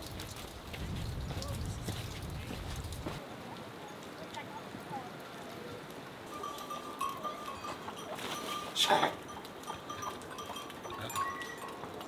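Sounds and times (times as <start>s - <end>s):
faint broken high tones: 6.3s - 12.0s.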